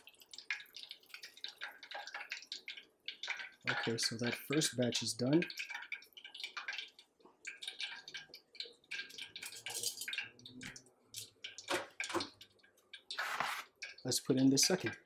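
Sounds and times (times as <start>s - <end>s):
frying oil crackling and popping: 0.0s - 15.0s.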